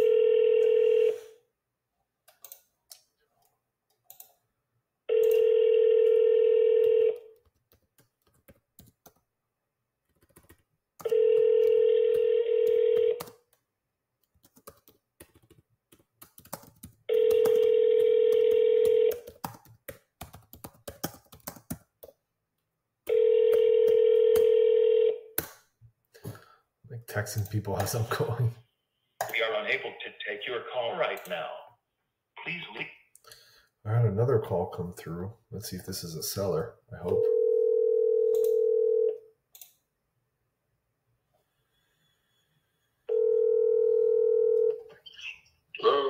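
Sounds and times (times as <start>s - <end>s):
phone ringback tone: 0.0s - 1.4s, 5.1s - 7.2s, 11.1s - 13.2s, 17.1s - 19.1s, 23.1s - 25.2s, 37.2s - 39.2s, 43.1s - 44.9s.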